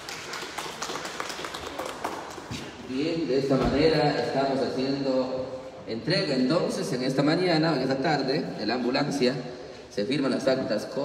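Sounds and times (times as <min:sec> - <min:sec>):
applause: 0:00.0 - 0:02.5.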